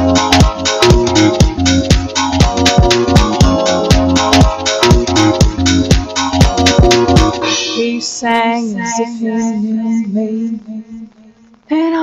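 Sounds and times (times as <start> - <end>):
sparse dance track backing: 0.0 - 11.6
high voice singing long note: 7.5 - 12.0.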